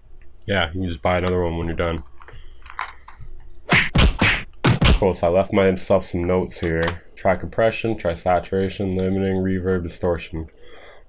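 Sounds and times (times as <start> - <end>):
heavy percussive hits: 3.7 - 5.2.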